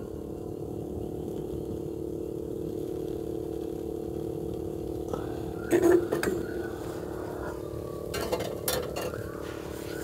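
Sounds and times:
steady low hum: 0.0s - 10.0s
wood fire burning: 0.0s - 10.0s.

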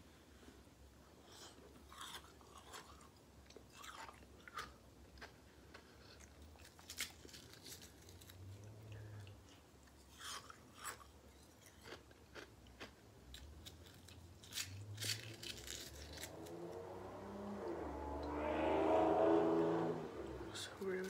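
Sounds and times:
chewing: 1.3s - 16.4s
loud car passing: 14.7s - 21.0s.

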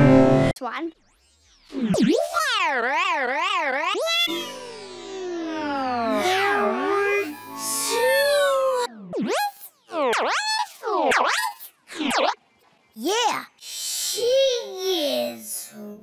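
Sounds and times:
pitch-bent electronic tones: 0.0s - 12.6s.

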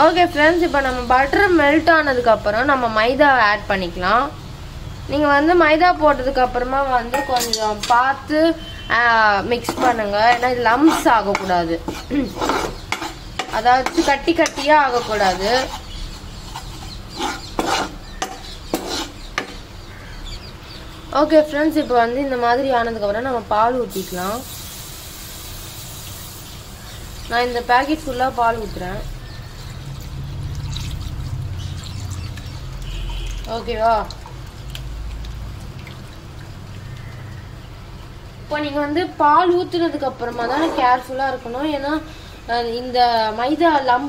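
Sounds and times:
spoon scraping and stirring in pan: 9.5s - 19.7s, 40.3s - 41.0s.

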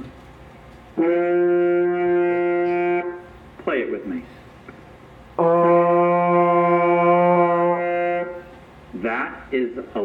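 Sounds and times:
trombone holding long note: 1.0s - 3.3s, 5.4s - 8.5s.

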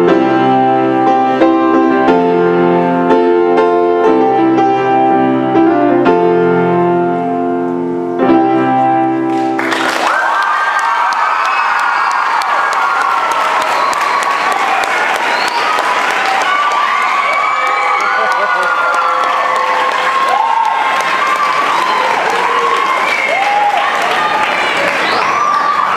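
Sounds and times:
audience clapping: 9.3s - 25.9s
shouts and whoops: 9.8s - 25.9s.

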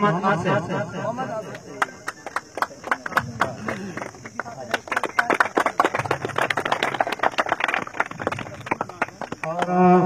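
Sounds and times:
crowd clapping: 1.5s - 10.0s.

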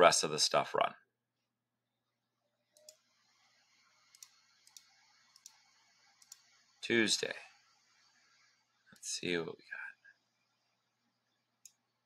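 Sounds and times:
computer mouse clicking: 2.7s - 6.7s, 11.6s - 11.9s.

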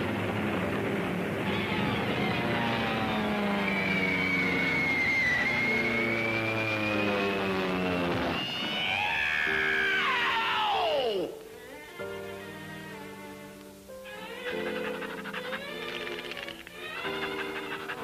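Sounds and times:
wavering high whine: 0.0s - 18.0s
falling dive-bomber whistle: 1.5s - 11.3s
orchestral cartoon music: 8.4s - 18.0s.

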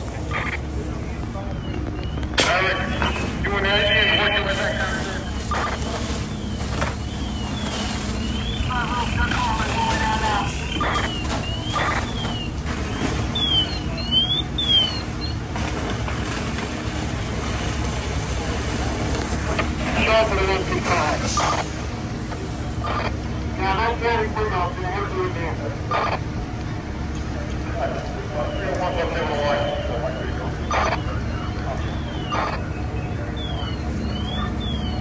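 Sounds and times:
diesel engines rumbling: 0.0s - 35.0s.

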